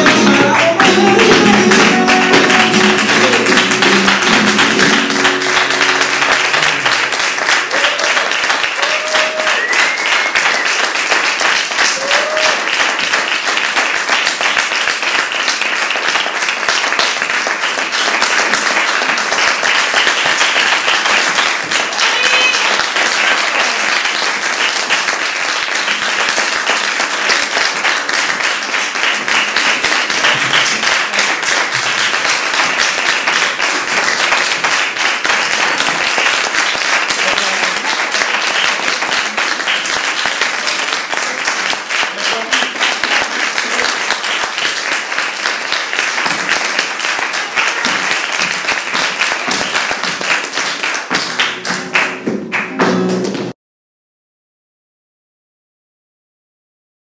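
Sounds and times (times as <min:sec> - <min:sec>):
audience applauding: 0:00.0 - 0:53.6.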